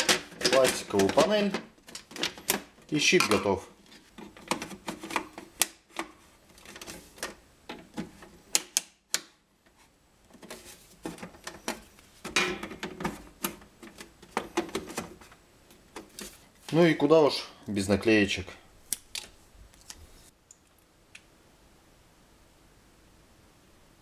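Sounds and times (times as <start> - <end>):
handling rustle: 9.7 - 16.9.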